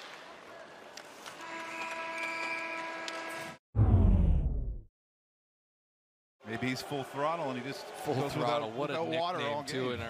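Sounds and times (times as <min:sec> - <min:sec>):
arena horn steady tone: 0:01.4 - 0:03.6
loud low whoosh: 0:03.8 - 0:04.9
crowd noise: 0:06.4 - 0:10.0.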